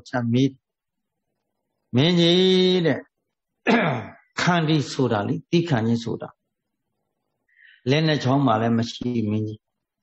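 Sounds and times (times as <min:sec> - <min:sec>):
man preaching: 0:01.9 - 0:03.2.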